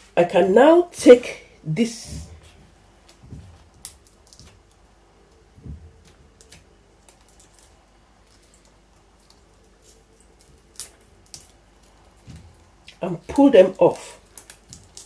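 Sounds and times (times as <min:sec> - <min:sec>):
dry leaves clicking and crackling: 0:03.0 - 0:15.0.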